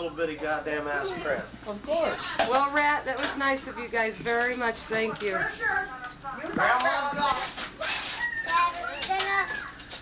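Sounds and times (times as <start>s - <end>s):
children chattering and calling out: 5.0s - 10.0s
wrapping paper rustling: 6.6s - 10.0s.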